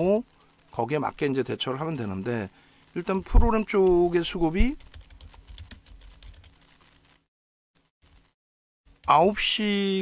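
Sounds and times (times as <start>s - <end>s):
computer keyboard typing: 3.8s - 6.6s.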